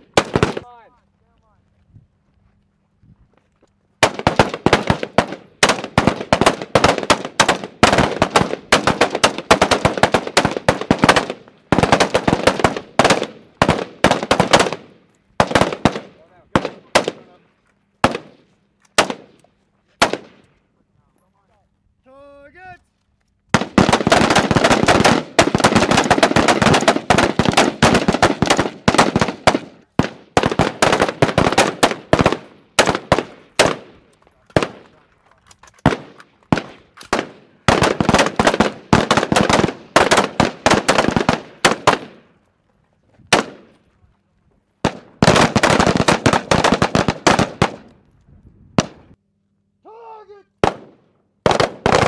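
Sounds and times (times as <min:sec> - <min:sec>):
rifles firing: 0:00.0 - 0:00.9, 0:04.0 - 0:20.6, 0:23.5 - 0:42.4, 0:43.3 - 0:43.8, 0:44.8 - 0:47.9, 0:48.8 - 0:49.2, 0:50.5 - 0:52.0.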